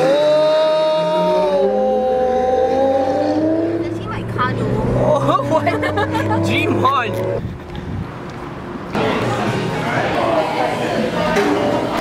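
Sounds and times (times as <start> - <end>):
sports car engine revving: 0.0 - 8.8.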